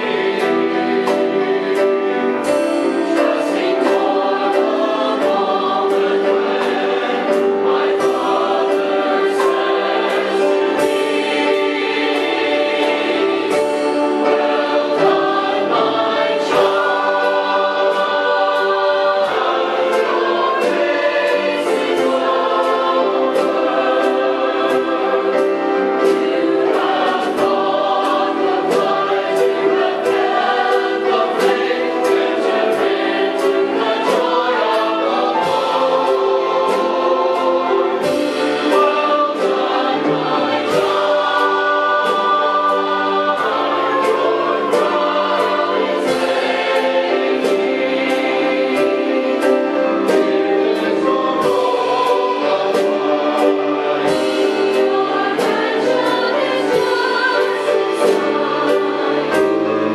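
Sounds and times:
choir singing gospel song: 0.0 - 59.9
instrumental accompaniment: 0.0 - 59.9.

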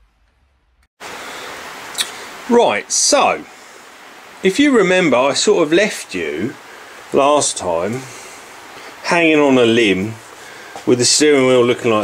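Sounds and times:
camcorder recording hiss: 1.0 - 12.0.

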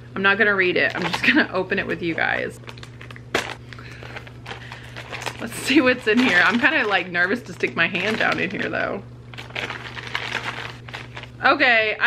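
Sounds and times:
plastic bag crinkling: 0.8 - 11.5.

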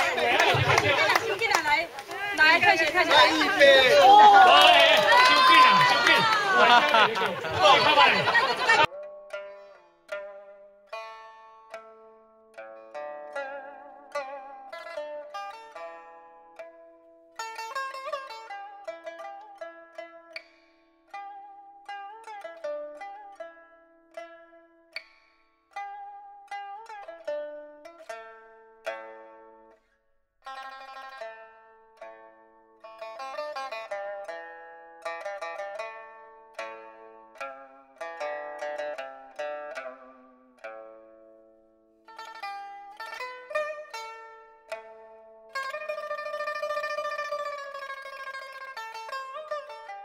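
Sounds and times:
plucked lute melody: 0.0 - 4.7, 6.6 - 50.0.

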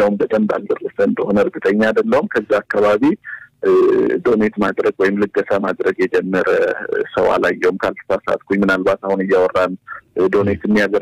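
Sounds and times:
narrator reading news: 0.0 - 11.0.

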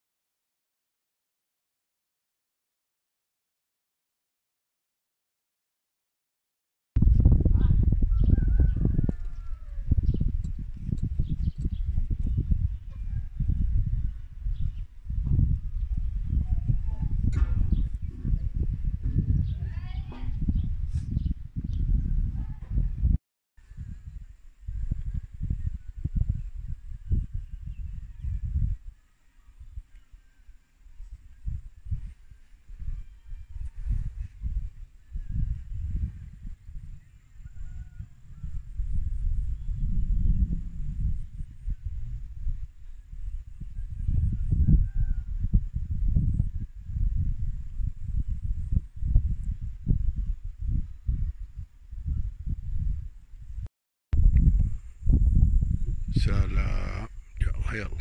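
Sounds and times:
wind buffeting microphone: 7.0 - 58.0.

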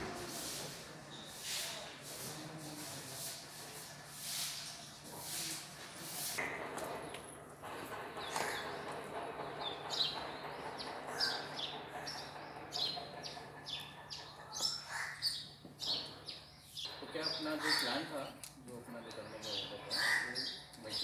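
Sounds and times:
small birds chirping: 9.6 - 21.0.

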